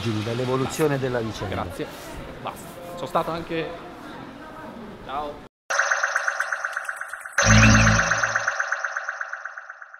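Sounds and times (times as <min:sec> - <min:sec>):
pulsing synth chord: 0:07.4 - 0:09.0.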